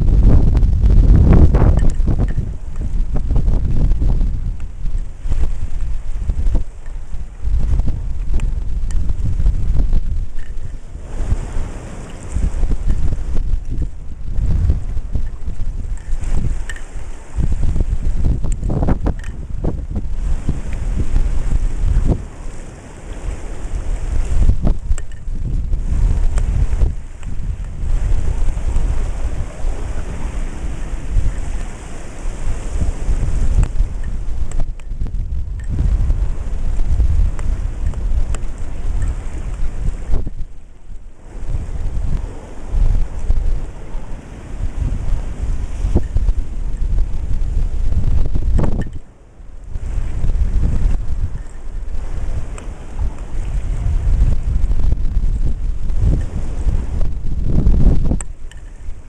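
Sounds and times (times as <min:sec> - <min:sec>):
ocean surf: 0:00.0 - 0:59.0
wind buffeting microphone: 0:00.0 - 0:59.0.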